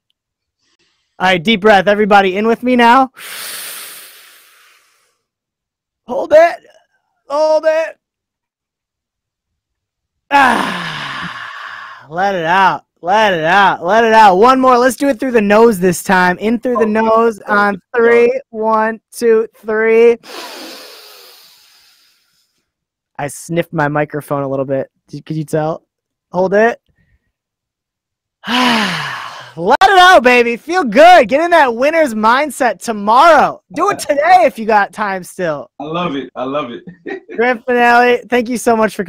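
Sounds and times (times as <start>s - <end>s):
deep breath into microphone: 3.2s - 5.2s
deep inhale through the nose: 3.2s - 5.2s, 20.2s - 22.6s
person speaking: 12.1s - 20.2s, 28.5s - 39.0s.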